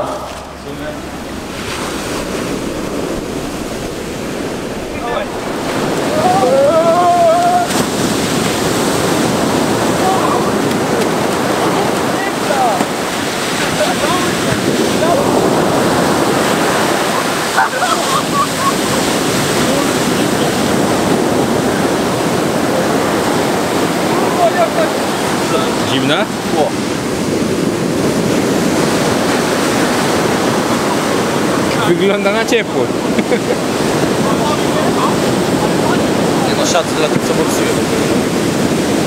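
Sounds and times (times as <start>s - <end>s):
surf breaking on a beach: 0.0s - 39.0s
men shouting: 4.5s - 20.8s.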